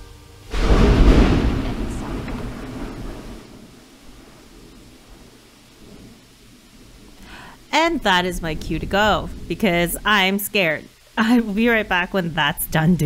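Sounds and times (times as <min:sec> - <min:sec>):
thunder crack and rumble: 0:00.5 - 0:10.1.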